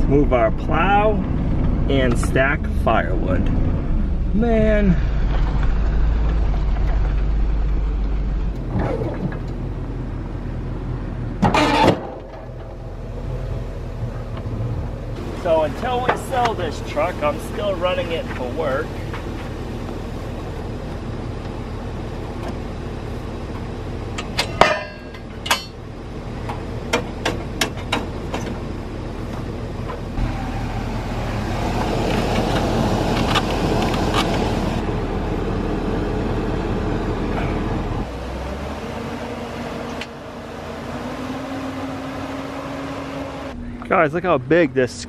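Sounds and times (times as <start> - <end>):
truck engine idling: 0.0 - 38.2.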